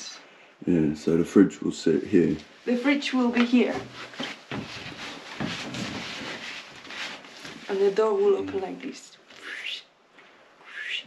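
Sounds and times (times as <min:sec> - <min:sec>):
clothing rustling on floor: 0:02.1 - 0:09.4.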